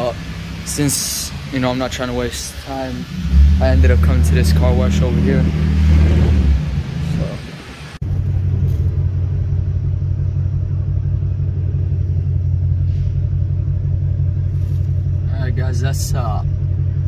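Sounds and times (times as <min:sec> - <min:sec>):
car engine rumble from inside cabin: 0:00.0 - 0:17.0.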